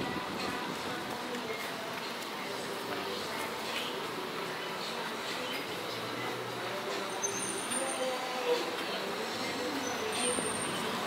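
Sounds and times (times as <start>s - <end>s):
street traffic: 0.0s - 11.0s.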